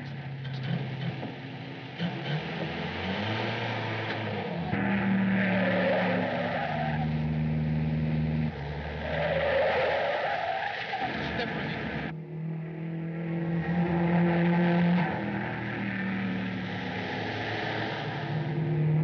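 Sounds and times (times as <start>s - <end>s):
car engine running fast: 0.0s - 19.0s
tyres squealing: 2.0s - 12.1s.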